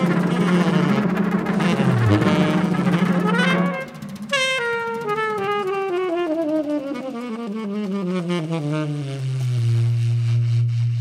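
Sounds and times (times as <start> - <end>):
big band jazz horns: 0.0 - 11.0.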